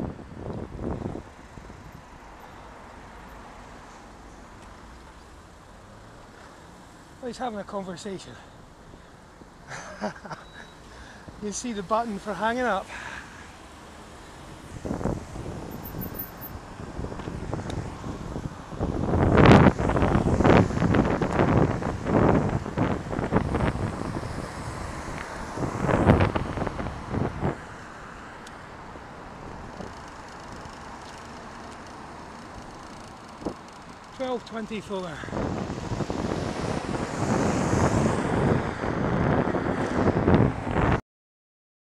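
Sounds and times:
road traffic: 0.0s - 41.0s
wind buffeting microphone: 14.6s - 27.7s, 35.3s - 41.0s.

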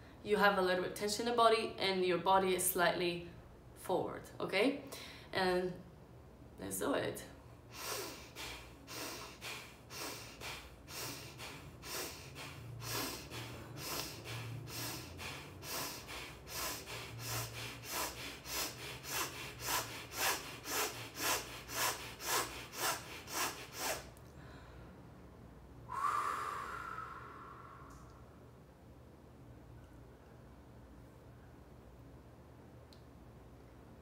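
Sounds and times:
woman breathing sharply through nose: 7.7s - 24.9s, 25.9s - 28.2s.

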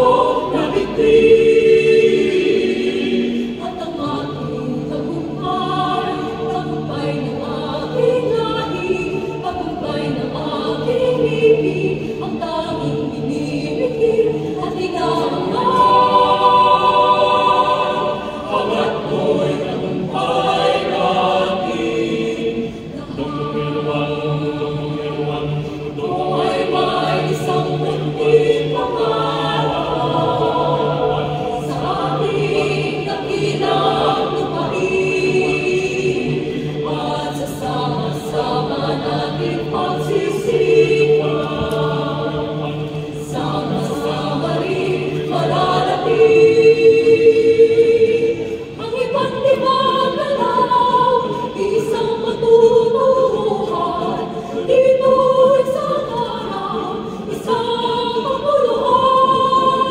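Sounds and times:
choir singing a cappella: 0.0s - 59.9s.

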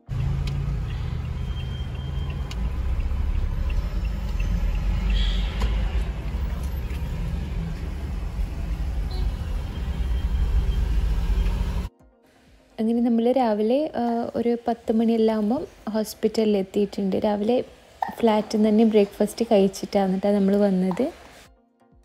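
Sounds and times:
engine and road rumble: 0.0s - 11.9s.

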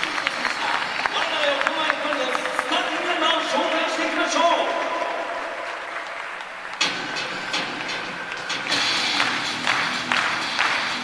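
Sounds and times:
crowd applause: 0.0s - 11.0s
music over loudspeakers: 0.0s - 11.0s.

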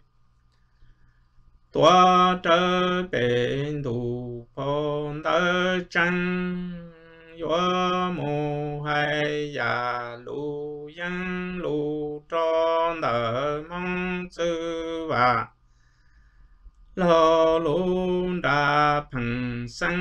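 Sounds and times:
man singing unaccompanied: 1.7s - 15.6s, 17.0s - 20.0s.

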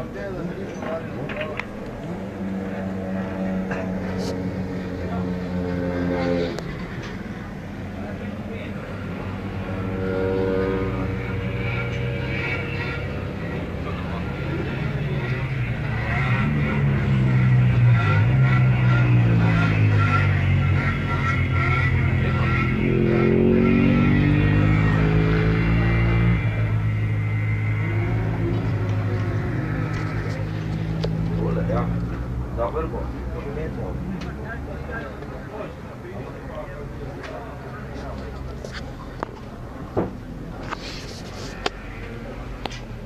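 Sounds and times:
engines revving: 0.0s - 43.0s.

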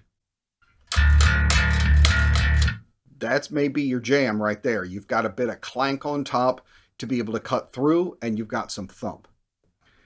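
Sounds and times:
electric bass guitar notes: 0.9s - 2.8s.

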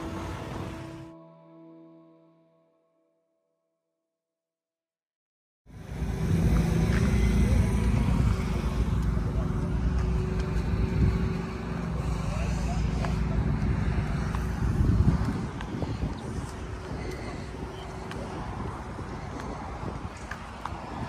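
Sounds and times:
car engine idling: 5.7s - 20.7s.

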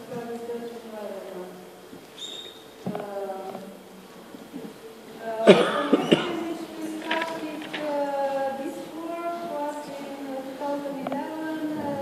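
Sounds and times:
person coughing: 5.4s - 6.5s.

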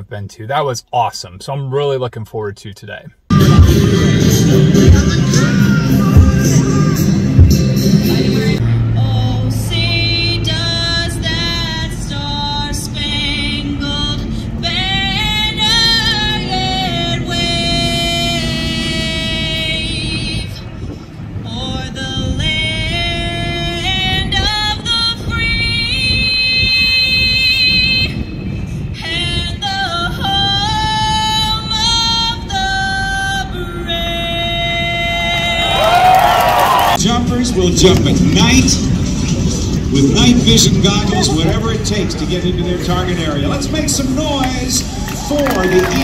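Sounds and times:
steady low noise: 3.3s - 16.3s, 36.9s - 45.0s
woman singing slow song: 8.1s - 20.6s, 21.4s - 28.2s, 29.0s - 36.0s.

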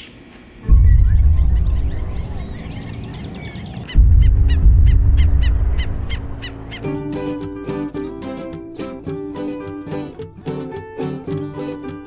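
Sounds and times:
deep low rumble: 0.7s - 6.8s
wetland birds calling: 0.8s - 8.0s.

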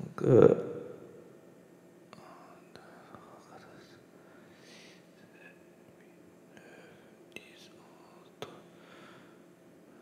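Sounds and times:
soft breathing: 2.1s - 5.6s, 6.5s - 10.0s.

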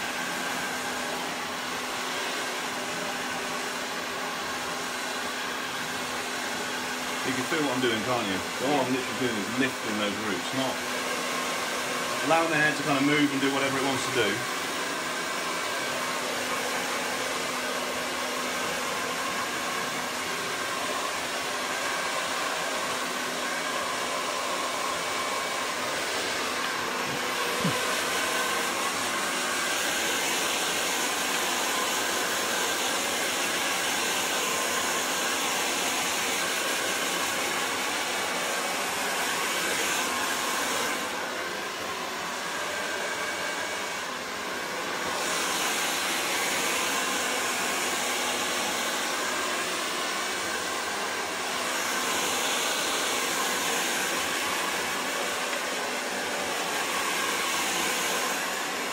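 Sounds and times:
hair dryer blowing: 0.0s - 58.9s.

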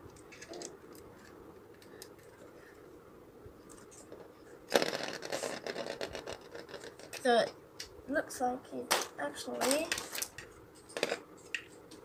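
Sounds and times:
spinning top rattling whir: 3.9s - 7.5s.

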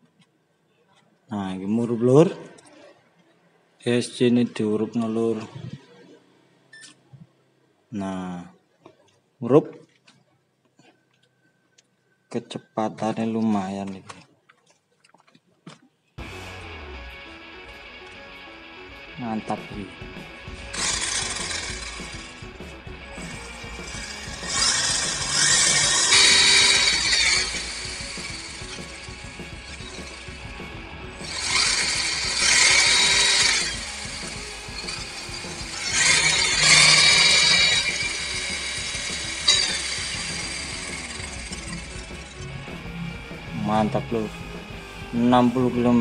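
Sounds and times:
toy car electric motor whining: 20.5s - 22.4s, 23.3s - 30.4s, 31.2s - 42.4s.

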